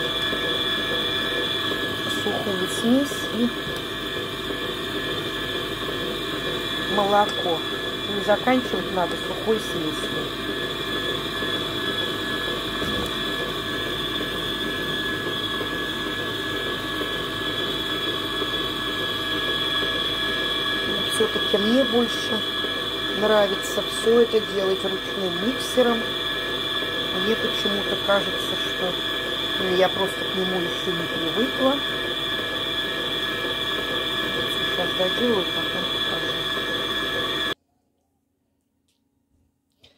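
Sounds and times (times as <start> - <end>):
stand mixer motor whine: 0.0 - 37.6.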